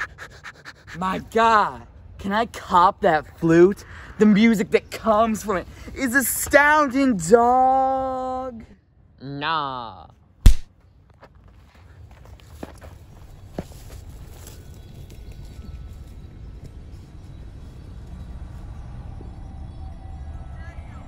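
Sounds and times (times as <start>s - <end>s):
loud thump: 10.4s - 10.7s.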